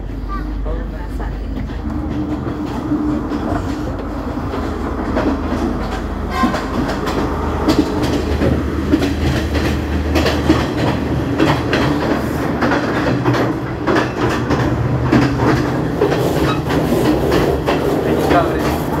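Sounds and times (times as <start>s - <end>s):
train rumbling: 0.0s - 19.0s
train wheels clacking over rail joints: 0.6s - 19.0s.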